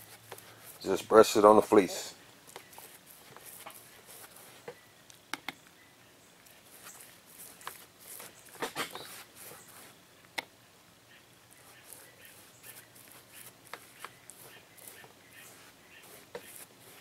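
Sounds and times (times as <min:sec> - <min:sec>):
brush dabbing resin onto fabric: 0:00.0 - 0:01.8, 0:02.4 - 0:04.8, 0:06.4 - 0:10.0, 0:11.5 - 0:17.0.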